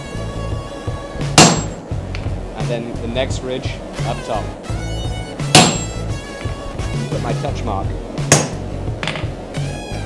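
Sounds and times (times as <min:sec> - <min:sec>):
background music: 0:00.0 - 0:10.0
sledgehammer striking hot metal: 0:01.3 - 0:01.8, 0:05.5 - 0:06.0
metallic ringing: 0:01.4 - 0:01.9, 0:05.5 - 0:06.3.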